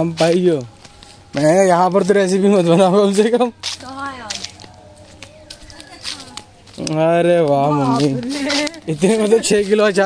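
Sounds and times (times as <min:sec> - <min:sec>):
person speaking: 0:05.3 - 0:10.0.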